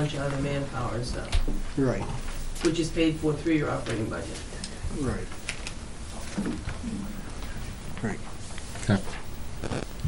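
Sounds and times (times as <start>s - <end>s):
man speaking: 0.0s - 5.4s, 7.9s - 9.8s.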